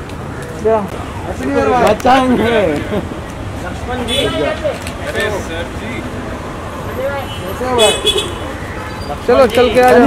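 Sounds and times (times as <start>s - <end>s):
street traffic: 0.0s - 10.0s
voices calling out: 0.0s - 10.0s.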